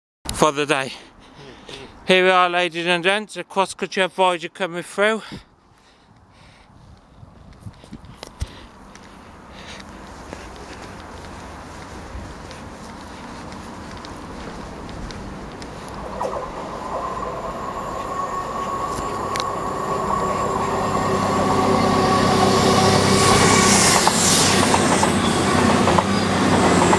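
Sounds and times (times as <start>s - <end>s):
rush of wheels and air: 6.1s - 26.9s
diesel train passing: 9.2s - 26.9s
steady high tone: 15.4s - 26.9s.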